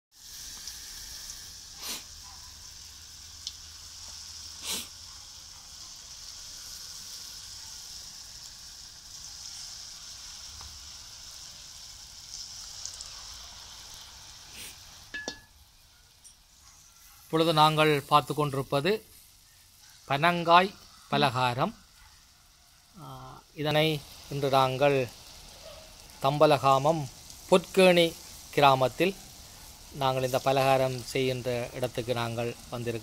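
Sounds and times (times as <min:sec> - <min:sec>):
batter deep-frying in hot oil: 0:00.1 - 0:33.0.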